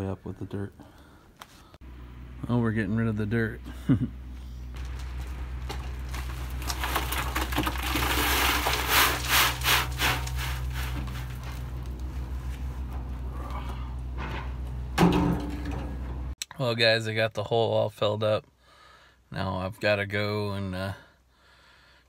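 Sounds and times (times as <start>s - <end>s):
steady low hum: 0.7s - 7.5s, 8.8s - 16.4s
dirt and stones pouring: 4.6s - 12.8s.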